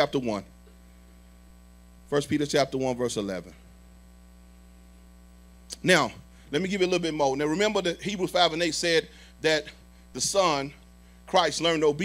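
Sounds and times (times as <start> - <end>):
man speaking: 0.0 - 0.6, 2.1 - 3.6, 5.7 - 12.0
electrical mains hum: 0.0 - 12.0.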